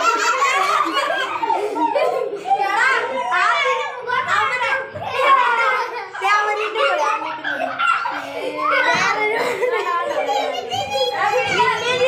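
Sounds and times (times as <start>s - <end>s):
children laughing: 0.0s - 12.0s
children talking: 0.0s - 12.0s.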